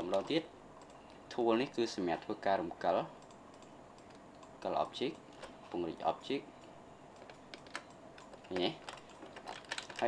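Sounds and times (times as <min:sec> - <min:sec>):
person speaking: 0:00.0 - 0:03.2, 0:04.5 - 0:06.6, 0:08.4 - 0:09.1.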